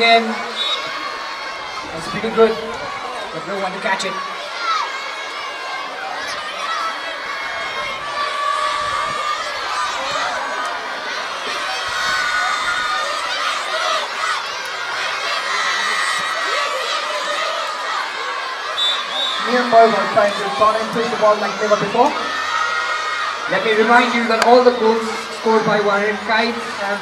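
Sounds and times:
children shouting and cheering: 0:00.0 - 0:27.0.

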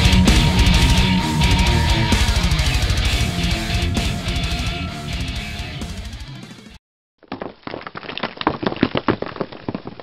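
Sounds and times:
crackles and pops: 0:07.2 - 0:10.0.

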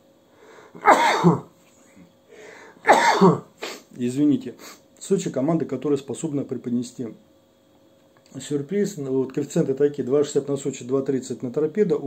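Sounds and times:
man coughing: 0:00.8 - 0:01.5, 0:02.8 - 0:03.5.

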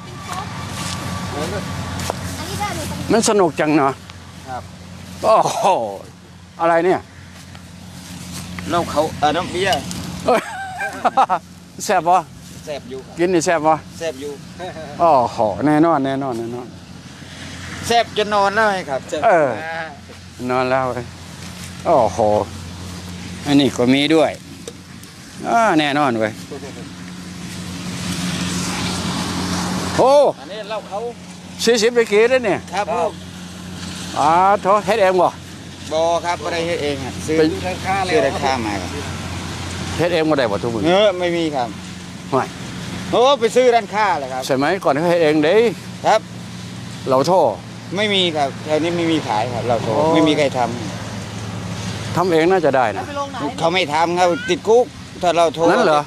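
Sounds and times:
engine humming: 0:00.0 - 0:56.0.

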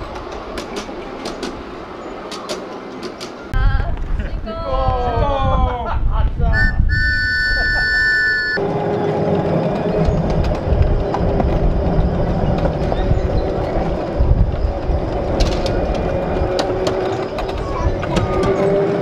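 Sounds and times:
wheels clicking on rails: 0:00.0 - 0:03.6, 0:07.6 - 0:19.0
steady high tone: 0:06.6 - 0:09.9
miniature train running hum: 0:06.9 - 0:19.0.

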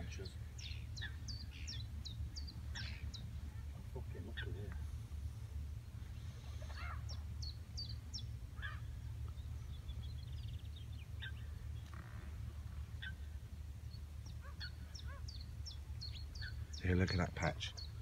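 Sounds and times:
lower bird calls: 0:00.0 - 0:18.0
steady low rumble: 0:00.0 - 0:18.0.

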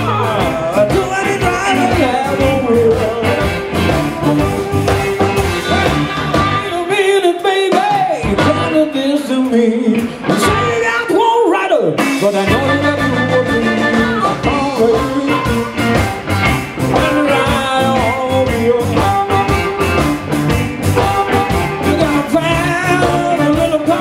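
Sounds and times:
electric blues band playing: 0:00.0 - 0:24.0
amplified harmonica: 0:00.5 - 0:06.9, 0:12.2 - 0:24.0.

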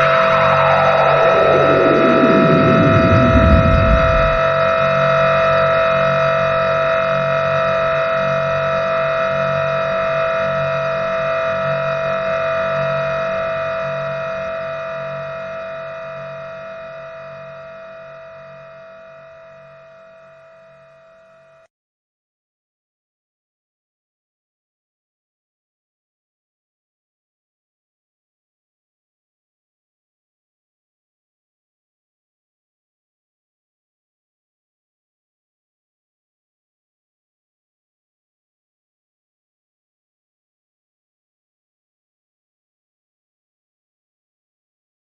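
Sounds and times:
pulsing low hum: 0:00.0 - 0:04.7
synth tone sweeping down: 0:00.0 - 0:04.9
held synth tones: 0:00.1 - 0:04.4.

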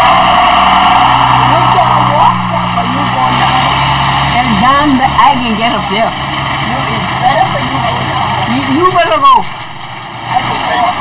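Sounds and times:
loud steady noise: 0:00.0 - 0:11.0
low hum: 0:00.0 - 0:11.0.

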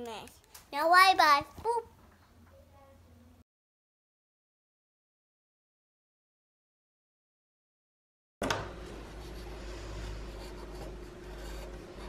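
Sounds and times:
low steady hum: 0:08.4 - 0:12.0
marker scratching on paper: 0:09.1 - 0:12.0.

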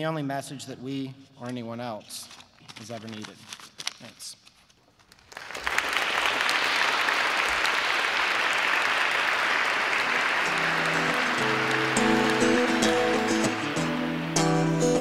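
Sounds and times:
audience applause: 0:05.2 - 0:14.6
music: 0:09.4 - 0:15.0.

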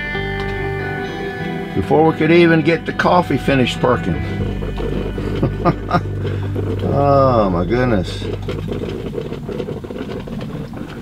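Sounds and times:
steady low hum: 0:00.0 - 0:11.0
coffee percolator bubbling pops: 0:00.3 - 0:11.0.

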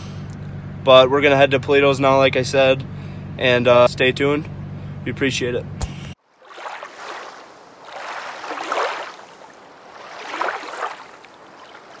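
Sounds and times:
water rushing: 0:06.2 - 0:12.0.

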